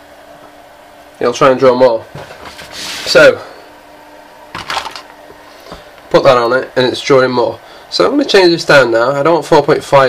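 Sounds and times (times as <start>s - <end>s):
batteries clattering in plastic tub: 4.6s - 5.1s.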